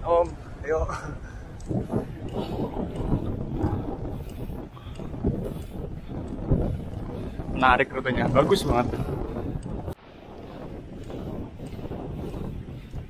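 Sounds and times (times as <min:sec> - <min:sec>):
wind rushing over microphone: 0:00.0 - 0:13.0.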